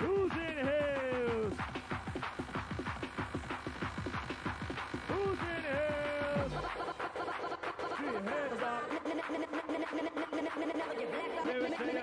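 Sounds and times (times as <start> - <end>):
choppy synth stabs: 0.0 - 12.0
rave dance music: 0.0 - 12.0.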